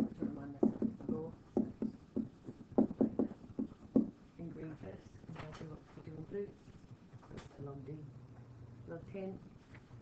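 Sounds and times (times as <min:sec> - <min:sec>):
stylus tapping on tablet screen: 0:00.0 - 0:04.2.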